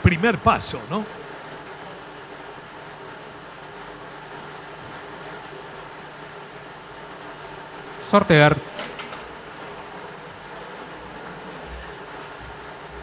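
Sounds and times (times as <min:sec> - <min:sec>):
steady background hum and hiss: 0:00.0 - 0:13.0.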